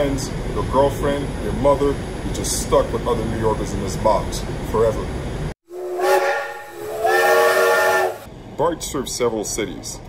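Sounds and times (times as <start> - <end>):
steam hissing: 5.7 - 8.3
steam train whistle: 5.7 - 8.3.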